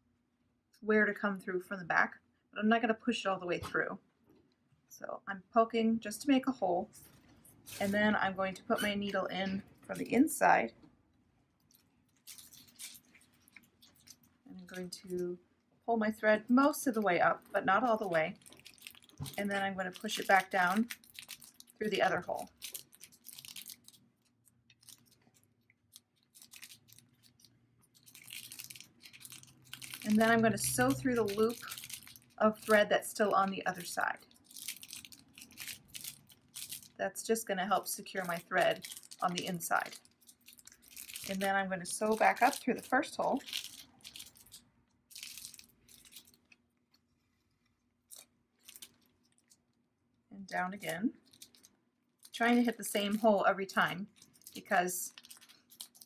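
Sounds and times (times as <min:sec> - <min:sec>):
needle and thread through fabric: 0:06.9 - 0:10.2
fabric crinkling and scraping: 0:06.9 - 0:10.3, 0:11.6 - 0:15.2, 0:17.2 - 0:37.0, 0:38.3 - 0:49.6.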